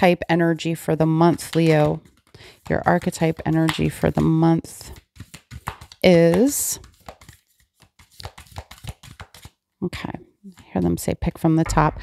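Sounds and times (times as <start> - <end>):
cards being shuffled: 1.3 - 9.6.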